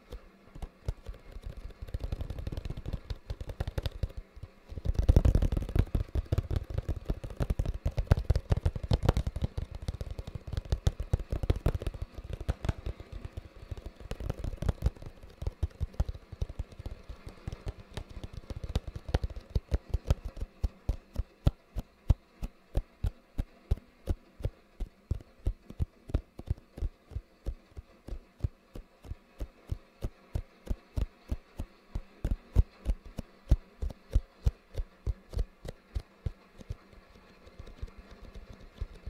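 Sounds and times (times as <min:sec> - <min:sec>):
fingers tapping on cardboard box: 0:00.6 - 0:39.0.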